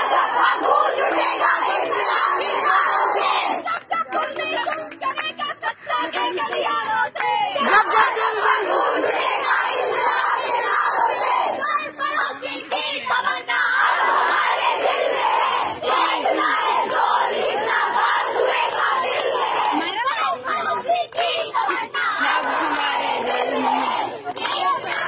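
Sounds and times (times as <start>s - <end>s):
crowd of women shouting slogans: 0.0s - 25.0s.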